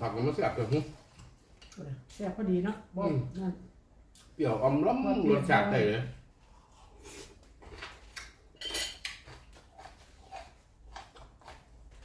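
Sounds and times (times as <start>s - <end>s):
spoon clinking on plate: 8.6s - 9.1s.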